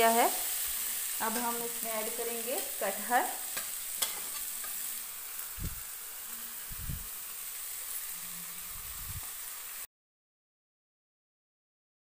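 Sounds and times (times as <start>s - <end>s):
masala sizzling in a pan: 0.0s - 9.9s.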